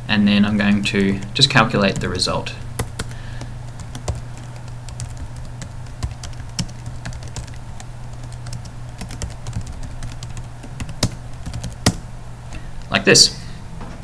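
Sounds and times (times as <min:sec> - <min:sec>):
steady low hum: 0:00.0 - 0:14.0
computer keyboard typing: 0:02.8 - 0:12.0.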